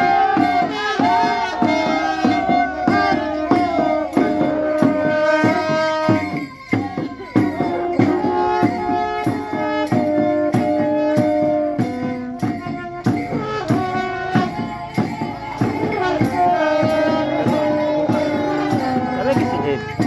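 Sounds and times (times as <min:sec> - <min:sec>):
drum beat: 0:00.0 - 0:20.0
held melodic notes: 0:00.0 - 0:20.0.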